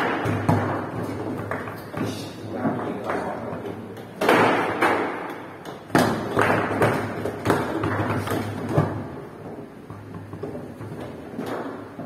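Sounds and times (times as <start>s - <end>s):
foosball knocks and clacks: 0.0s - 12.0s.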